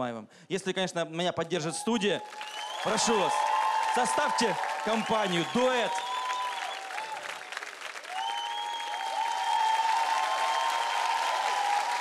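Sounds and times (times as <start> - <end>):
audience applauding: 2.2 - 12.0.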